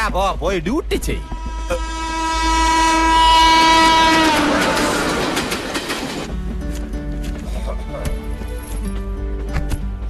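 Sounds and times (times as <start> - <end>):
moving train rushing and clattering: 0.0 - 9.1
train horn: 1.2 - 5.3.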